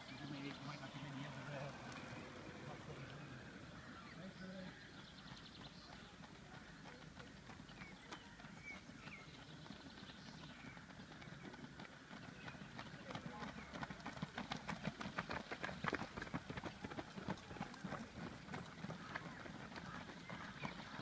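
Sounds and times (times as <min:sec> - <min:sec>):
distant voices: 0:00.0 - 0:15.0.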